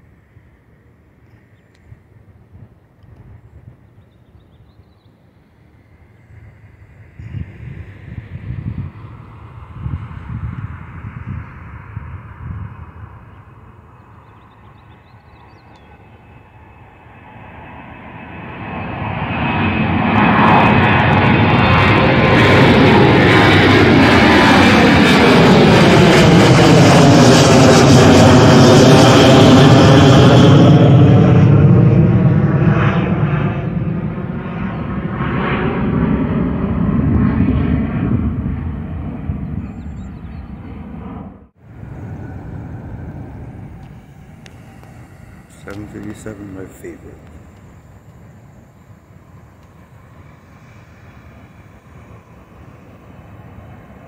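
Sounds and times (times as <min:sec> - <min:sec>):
jet airliner passing overhead: 0:00.0 - 0:54.0.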